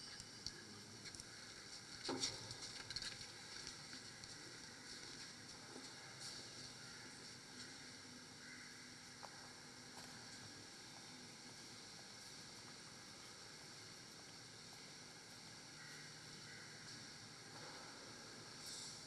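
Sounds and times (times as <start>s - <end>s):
low hiss: 0.0s - 19.0s.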